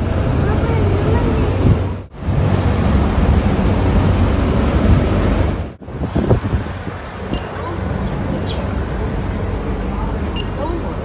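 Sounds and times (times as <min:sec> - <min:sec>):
wind on microphone: 0:00.0 - 0:11.0
faint voices: 0:07.4 - 0:11.0.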